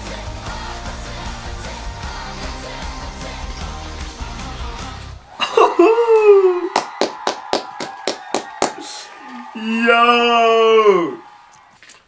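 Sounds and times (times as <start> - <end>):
person shouting: 5.6 - 6.8, 8.8 - 11.3
hands clapping: 6.2 - 9.5.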